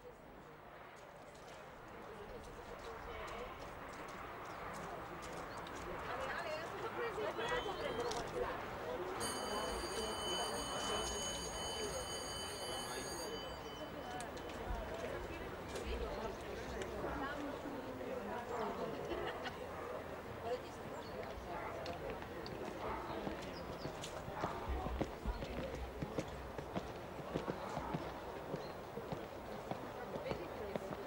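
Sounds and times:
murmur of voices: 0:00.0 - 0:31.0.

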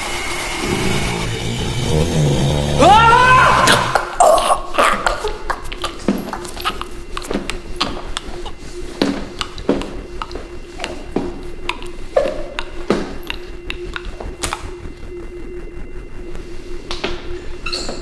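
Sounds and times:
steady low hum: 0:00.0 - 0:18.0.

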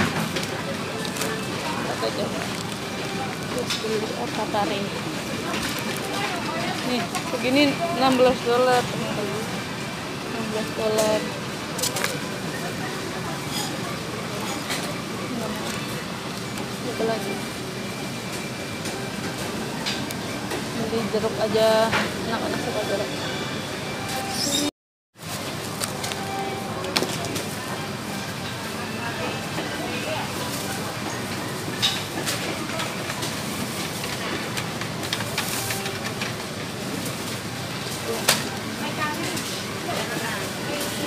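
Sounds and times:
shopping trolley wheels rattling: 0:00.0 - 0:23.1, 0:24.2 - 0:41.0
store background hum: 0:00.0 - 0:41.0.

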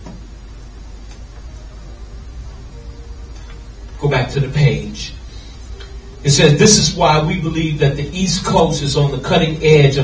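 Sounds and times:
even hiss: 0:00.0 - 0:10.0
steady low hum: 0:00.0 - 0:10.0.

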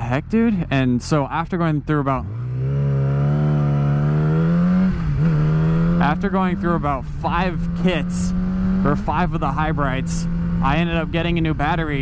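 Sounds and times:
motorcycle engine accelerating: 0:01.2 - 0:12.0.

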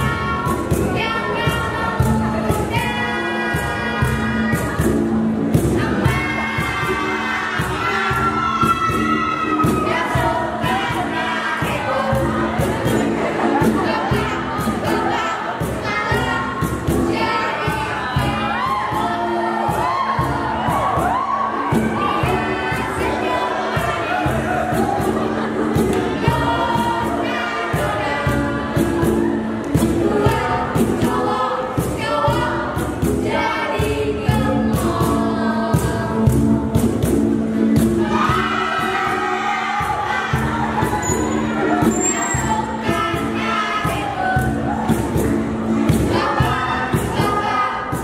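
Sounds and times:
group of voices singing: 0:00.0 - 0:48.0.

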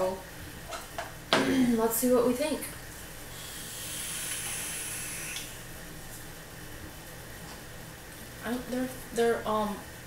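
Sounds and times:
vape hissing as drawn on: 0:03.3 - 0:05.6.

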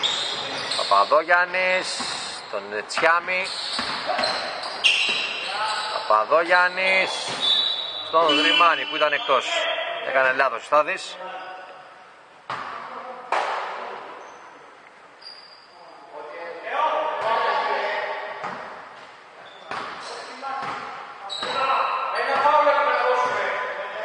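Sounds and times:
voices calling out: 0:00.0 - 0:11.8
basketball bouncing on hardwood floor: 0:03.8 - 0:04.4.

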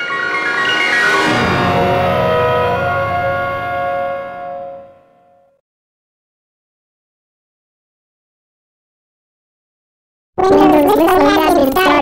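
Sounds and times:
bell-like startup chime: 0:00.0 - 0:05.5.

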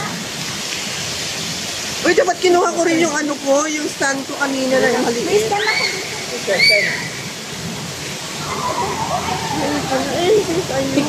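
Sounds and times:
water spilling into overflow gutter: 0:00.0 - 0:11.0.

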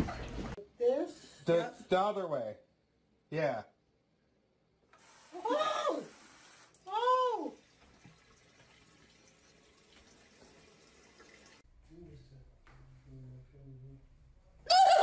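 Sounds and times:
bidet water jet hissing: 0:04.9 - 0:06.8.

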